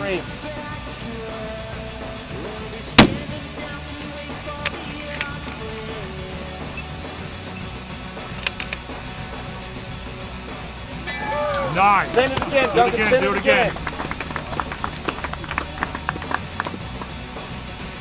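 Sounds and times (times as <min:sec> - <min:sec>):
background music: 0:00.0 - 0:18.0
rifle shot: 0:03.0 - 0:03.6.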